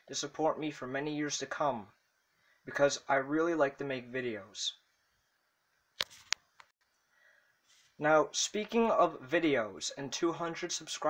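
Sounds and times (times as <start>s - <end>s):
short rustle: 7.6s - 8.0s.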